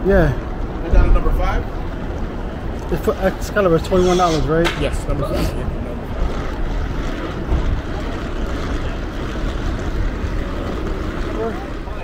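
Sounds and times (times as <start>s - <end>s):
traffic rumble: 0.0s - 12.0s
wind buffeting microphone: 0.0s - 12.0s.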